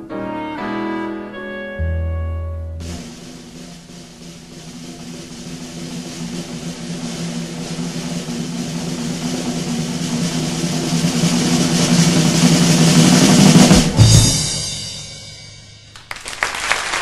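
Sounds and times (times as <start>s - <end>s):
low drone: 1.7s - 11.5s
rushing noise: 2.8s - 14.0s.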